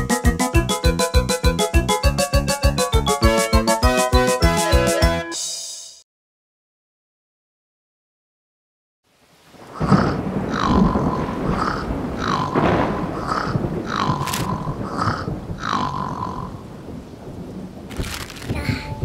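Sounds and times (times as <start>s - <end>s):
rain noise: 9.1s - 19.0s
rumbling thunder: 9.6s - 19.0s
cartoon snoring with whistle: 9.8s - 12.6s, 13.2s - 16.6s.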